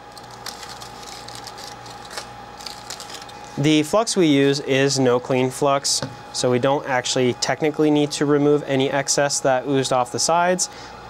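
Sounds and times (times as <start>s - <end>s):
foil tape crinkling: 0.0s - 3.6s
steady low hum: 0.0s - 11.0s.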